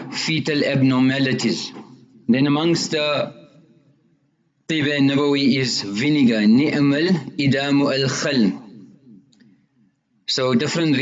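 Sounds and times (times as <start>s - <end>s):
man lecturing: 0.0s - 3.6s, 4.7s - 8.8s, 10.2s - 11.0s.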